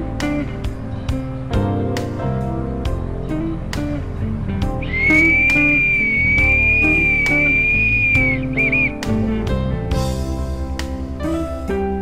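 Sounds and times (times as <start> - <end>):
background music with plucked guitar: 0.0 - 12.0
short warbles: 4.8 - 8.9
high whistle: 4.8 - 9.1.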